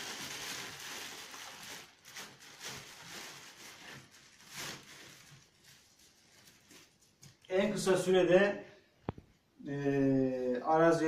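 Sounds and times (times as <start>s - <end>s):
plastic bag rustling: 0.0s - 7.8s.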